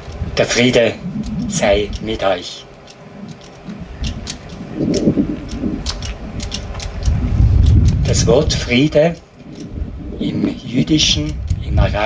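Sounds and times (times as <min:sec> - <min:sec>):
sharp clicks: 0:00.0 - 0:12.0
wind buffeting microphone: 0:00.0 - 0:12.0.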